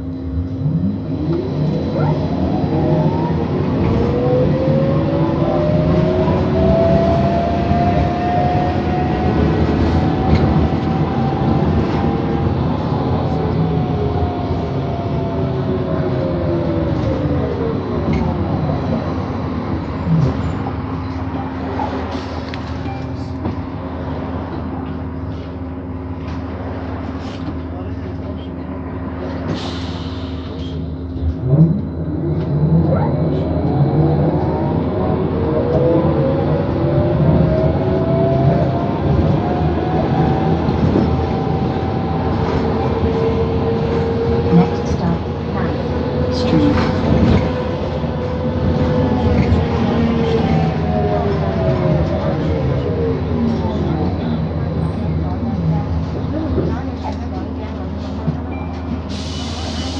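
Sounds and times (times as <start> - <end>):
bus drive whine: 0.0 - 59.9.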